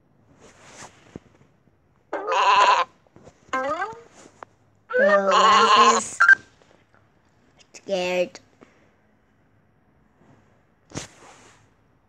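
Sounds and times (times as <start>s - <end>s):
cartoon sheep bleat: 2.2s - 2.9s, 4.9s - 6.4s.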